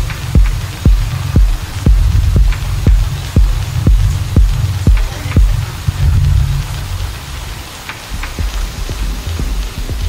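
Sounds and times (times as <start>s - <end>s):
electronic dance music: 0.0s - 7.1s
bass: 0.0s - 10.0s
hissing noise wash: 0.0s - 10.0s.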